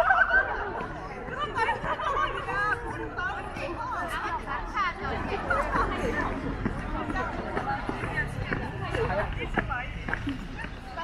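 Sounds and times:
distant chatter of voices: 0.0s - 11.0s.

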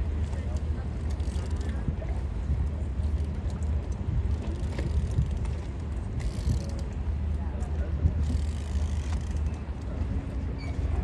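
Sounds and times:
boat engines rumbling: 0.0s - 11.0s.

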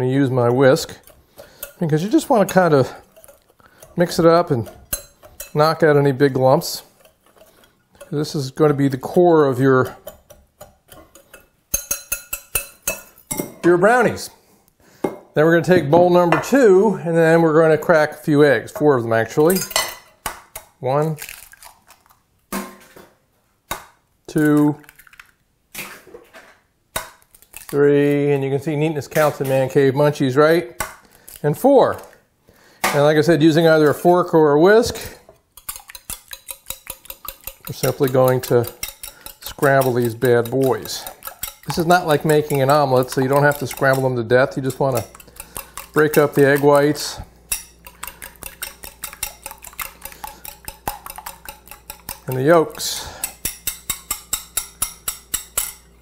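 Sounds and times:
whisk clicking against bowl: 0.4s - 13.0s, 35.6s - 55.8s.

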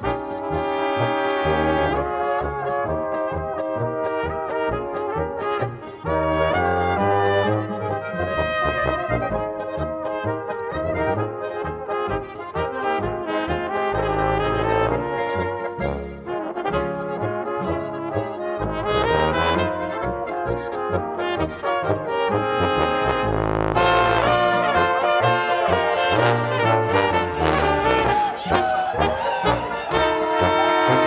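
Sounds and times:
brass horns playing tune: 0.0s - 31.0s
guitar: 0.0s - 31.0s
tuba oom-pah bass: 0.0s - 31.0s.

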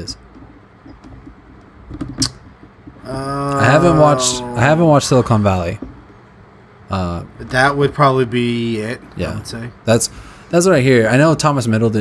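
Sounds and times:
short breath: 10.1s - 10.5s.

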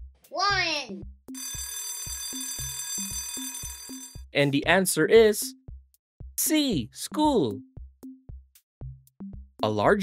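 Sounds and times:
background music with steady beat: 0.0s - 10.0s
alarm clock bell ringing: 1.4s - 4.2s.

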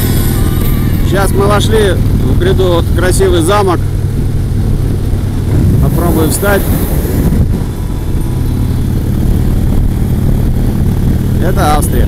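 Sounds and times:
motorcycle engine cruising: 0.0s - 12.0s
wind and road noise: 0.0s - 12.0s.

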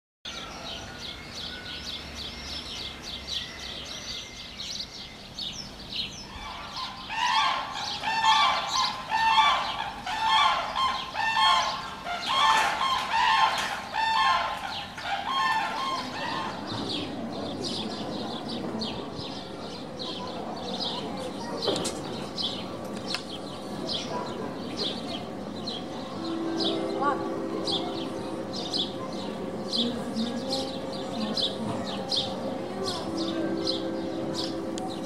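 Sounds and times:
large bird repeated pitched calls: 6.3s - 16.7s.

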